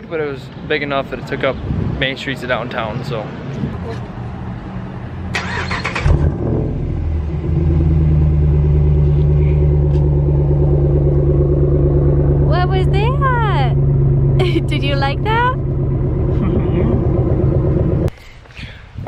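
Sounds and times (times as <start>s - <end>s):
engine cranking: 5.3s - 6.4s
engine idling: 5.4s - 18.2s.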